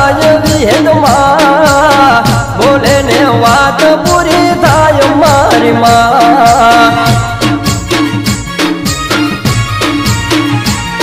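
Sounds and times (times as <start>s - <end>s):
dhol drum beat: 0.0s - 11.0s.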